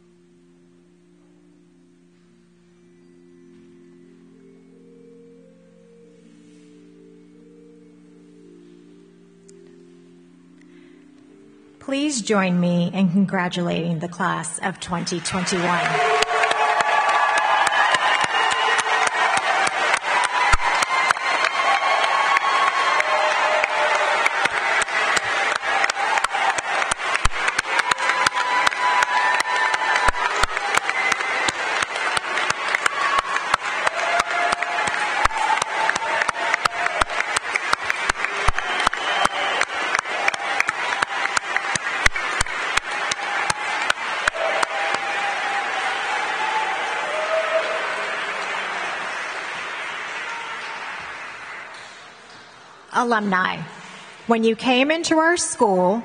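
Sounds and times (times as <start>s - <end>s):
audience clapping: 14.2s - 53.2s
voices calling out and cheering: 14.6s - 52.4s.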